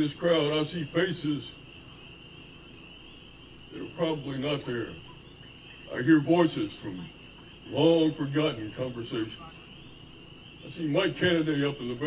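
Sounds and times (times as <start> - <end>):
man talking: 0.0 - 1.6, 3.7 - 5.1, 5.9 - 7.1, 7.7 - 9.7, 10.6 - 12.0
night animals calling chorus: 0.0 - 12.0.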